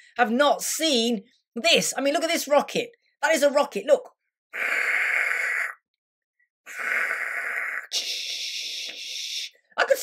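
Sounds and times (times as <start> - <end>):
man making whooshing mouth noises: 4.6 - 5.8, 6.7 - 9.6.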